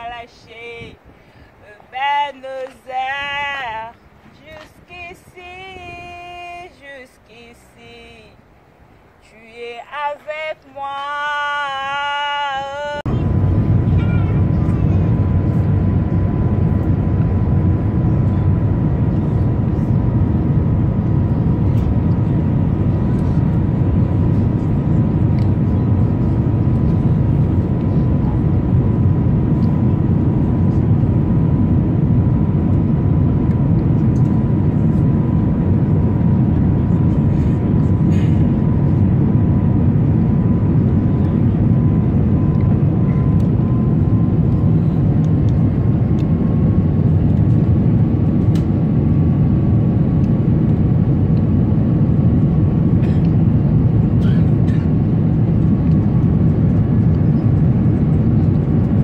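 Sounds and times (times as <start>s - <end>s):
thin steady engine whine: 0.0s - 59.0s
jet engine rush from cabin: 13.0s - 59.0s.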